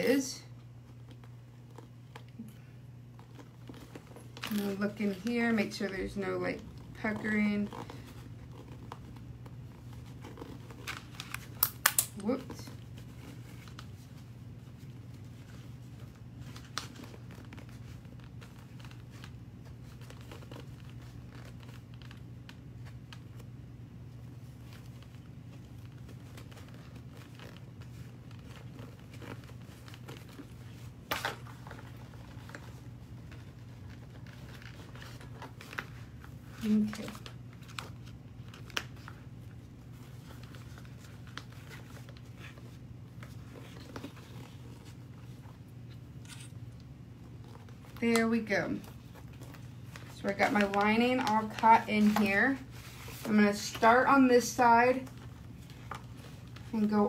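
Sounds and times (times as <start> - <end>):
low steady hum: 0.0 - 57.0
fabric rustling: 12.2 - 57.0.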